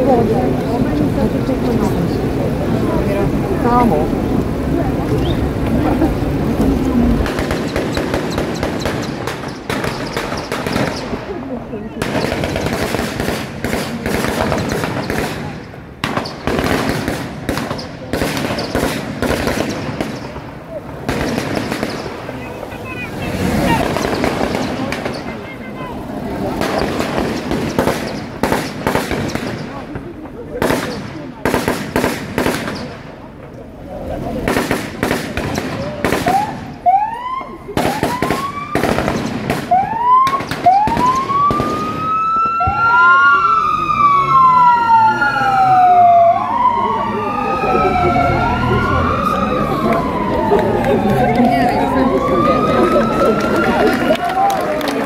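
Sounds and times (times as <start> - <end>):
police sirens wailing: 0.0 - 31.5, 32.8 - 55.0
crowd chatter: 0.0 - 55.0
sharp bangs: 7.2 - 11.3, 12.0 - 22.4, 23.3 - 25.4, 26.5 - 33.2, 34.4 - 36.9, 37.7 - 42.2.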